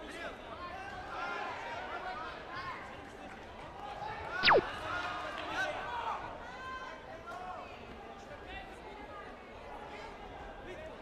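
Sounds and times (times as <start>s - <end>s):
electronic chirp sweeping downward: 4.4s - 4.7s.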